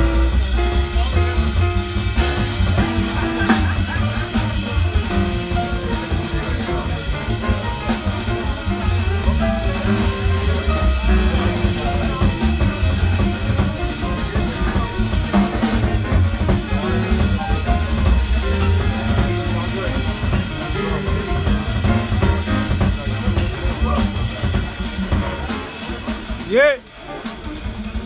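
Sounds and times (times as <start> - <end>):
grand piano: 0.0 - 26.4
drum kit keeping time: 0.0 - 28.0
walking double bass: 0.0 - 28.0.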